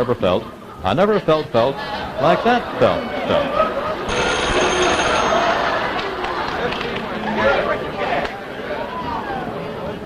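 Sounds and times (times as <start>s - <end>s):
audience laughing and clapping: 2.4s - 8.3s.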